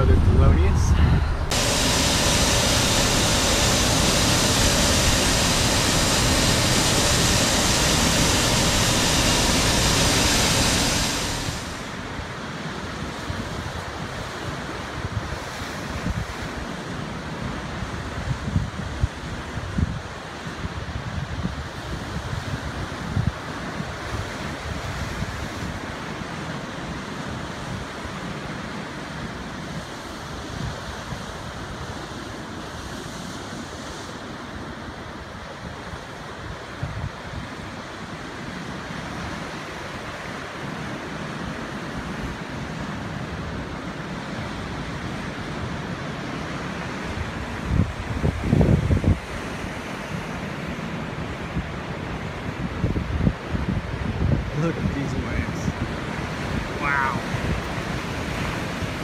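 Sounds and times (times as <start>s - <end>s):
loud steady equipment hiss: 0.0s - 12.2s, 54.5s - 55.8s
wind gusting on microphone: 0.0s - 16.8s, 45.8s - 50.4s, 51.2s - 59.0s
surf washing over rocks: 0.0s - 59.0s.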